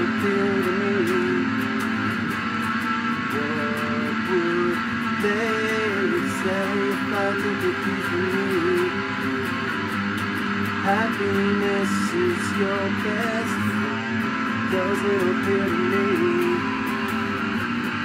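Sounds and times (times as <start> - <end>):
electric guitar playing: 0.0 - 18.0.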